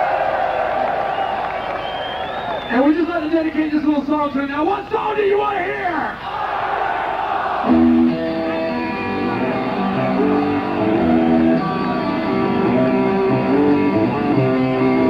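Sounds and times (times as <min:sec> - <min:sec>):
crowd noise: 0:00.0 - 0:15.0
electric guitar picked notes: 0:07.7 - 0:15.0.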